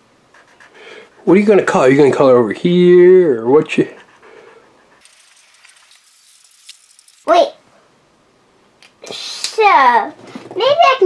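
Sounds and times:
marker scratching on paper: 0:04.6 - 0:06.2.

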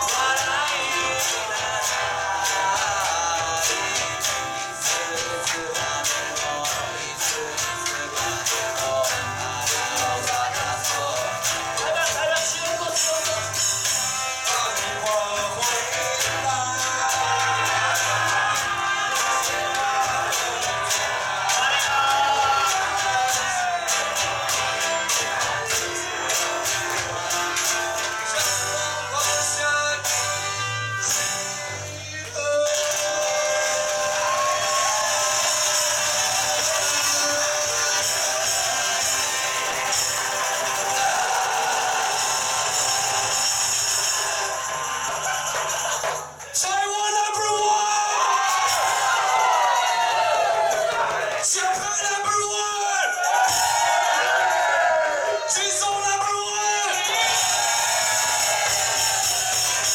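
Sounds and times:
maracas shaking: 0:00.0 - 0:46.8, 0:48.2 - 0:59.9
small live band playing: 0:00.0 - 0:59.9
audience whooping: 0:16.0 - 0:28.6, 0:32.6 - 0:46.7, 0:47.3 - 0:59.9
shaken maracas: 0:32.3 - 0:46.6, 0:48.2 - 0:52.1, 0:52.8 - 0:55.6, 0:56.8 - 0:59.9.

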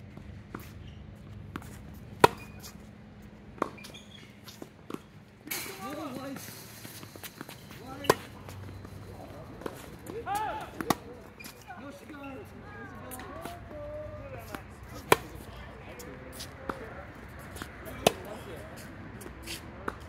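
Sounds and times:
tennis ball bouncing: 0:00.5 - 0:02.9, 0:03.6 - 0:05.2, 0:06.9 - 0:12.0, 0:14.4 - 0:18.4
tennis racket hitting ball: 0:02.2 - 0:02.8, 0:06.9 - 0:08.5, 0:09.6 - 0:11.1, 0:14.4 - 0:15.5, 0:17.4 - 0:18.4.

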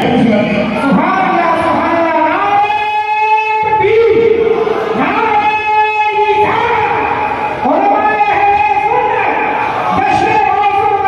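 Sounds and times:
man chanting through a microphone: 0:00.0 - 0:11.0.

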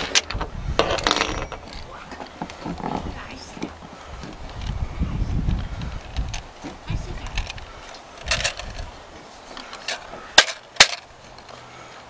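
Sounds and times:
metal parts clicking and clattering: 0:00.0 - 0:03.0, 0:07.2 - 0:08.9, 0:09.6 - 0:11.6.

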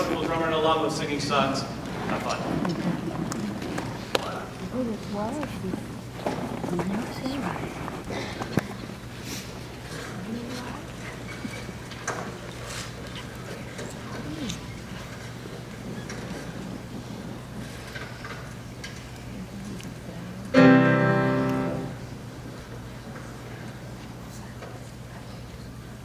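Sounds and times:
faint hall noise: 0:00.0 - 0:26.0
piano note ringing: 0:20.6 - 0:22.2.

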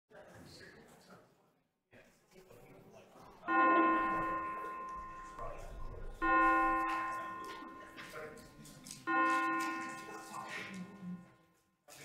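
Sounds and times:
bell tolling: 0:03.5 - 0:11.4.

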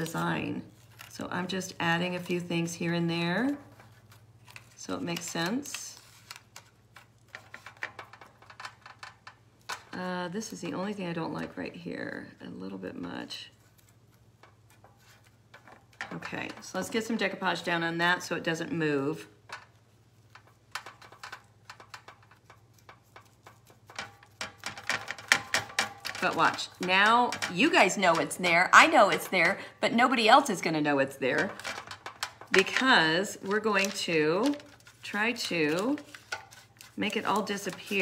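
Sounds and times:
paper crackling and tapping: 0:00.0 - 0:11.7, 0:13.5 - 0:38.0
paintbrush ticking and tapping: 0:19.5 - 0:29.6, 0:31.3 - 0:38.0.

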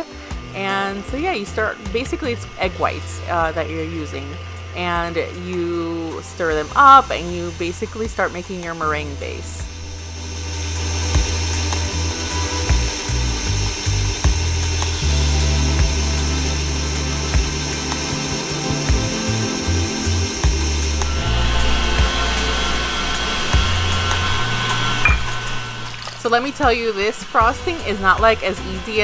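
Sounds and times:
background music: 0:00.0 - 0:29.0
stand mixer whisk whining: 0:00.0 - 0:29.0.

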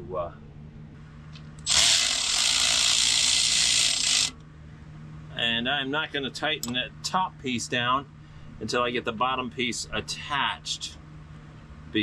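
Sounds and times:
cordless power ratchet whirring: 0:01.6 - 0:04.4.

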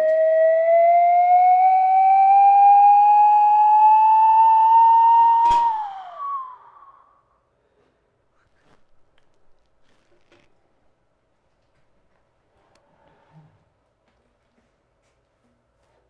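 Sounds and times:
slide whistle: 0:00.0 - 0:07.2
sharp click: 0:05.4 - 0:05.9.

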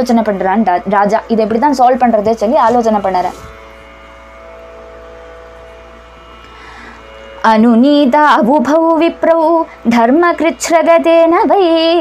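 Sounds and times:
background hum with held tones: 0:00.0 - 0:12.0.

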